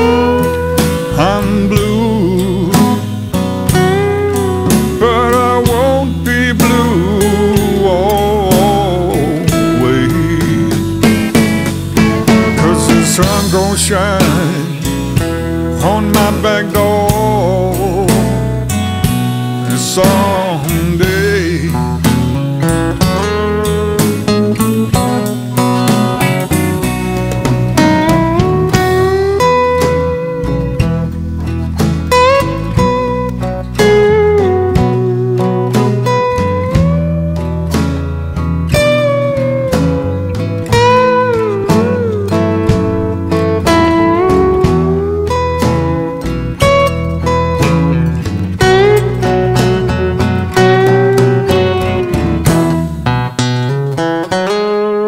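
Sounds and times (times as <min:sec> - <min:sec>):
drums: 0:00.0 - 0:54.7
acoustic guitar: 0:00.0 - 0:55.0
electric bass: 0:00.0 - 0:55.0
lap steel guitar solo: 0:00.0 - 0:55.0.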